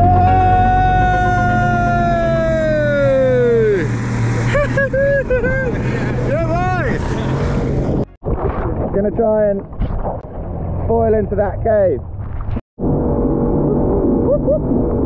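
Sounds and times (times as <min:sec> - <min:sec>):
person shouting: 0:00.0 - 0:03.9
person whooping: 0:00.0 - 0:03.9
outboard motor running: 0:00.0 - 0:08.1
rushing wind and water: 0:00.0 - 0:13.5.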